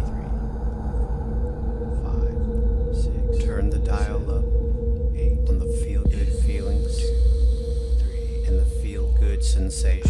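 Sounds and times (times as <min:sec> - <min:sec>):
low drone: 0:00.0 - 0:10.0
wavering pitched calls: 0:00.0 - 0:10.0.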